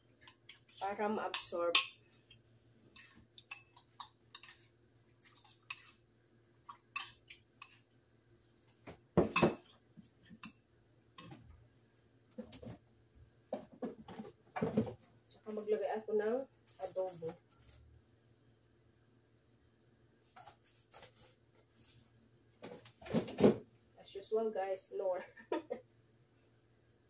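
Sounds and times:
metal spoon scraping ceramic bowl: 0:02.9 - 0:04.6, 0:05.3 - 0:06.0.

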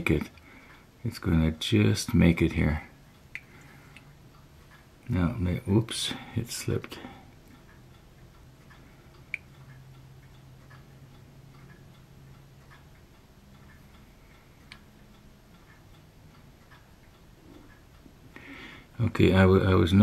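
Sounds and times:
faint ticking: 0:00.0 - 0:20.0.

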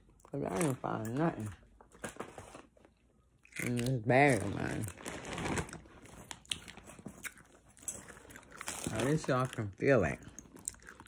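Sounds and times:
rummaging in a handbag: 0:05.0 - 0:07.2.

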